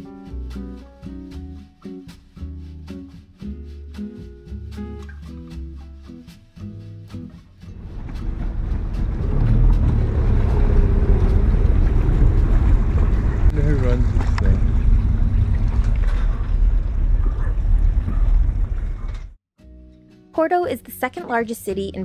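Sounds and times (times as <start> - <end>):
rushing water: 7.8 - 17.2
wind rumble on microphone: 7.8 - 19.4.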